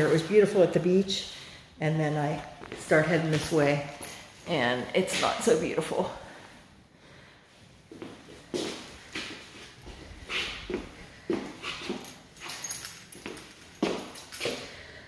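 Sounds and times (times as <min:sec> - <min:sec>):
footsteps on hard floor: 0:07.9 - 0:14.6.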